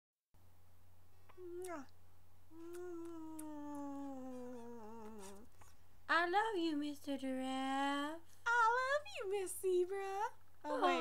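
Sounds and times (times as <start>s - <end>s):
low electrical hum: 0.4s - 11.0s
voice making meow-like calls: 2.5s - 5.5s.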